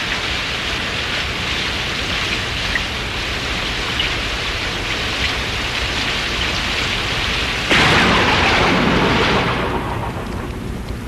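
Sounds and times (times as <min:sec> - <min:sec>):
heavy rain: 0:00.0 - 0:11.0
thunder rolling: 0:07.7 - 0:11.0.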